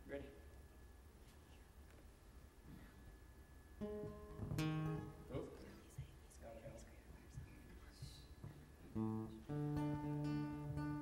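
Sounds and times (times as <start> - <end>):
acoustic guitar strumming: 3.8 - 5.4, 8.4 - 11.0.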